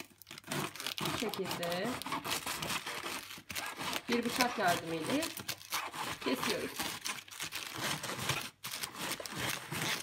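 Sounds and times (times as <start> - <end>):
knife cutting crunchy cabbage: 0.0 - 10.0.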